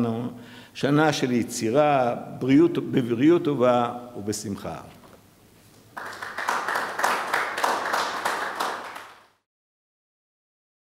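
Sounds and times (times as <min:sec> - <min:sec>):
audience applauding: 0:05.9 - 0:09.4.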